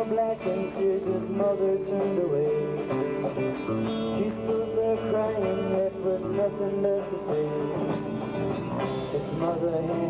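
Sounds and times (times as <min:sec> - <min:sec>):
drums: 0:00.0 - 0:10.0
electric guitars: 0:00.0 - 0:10.0.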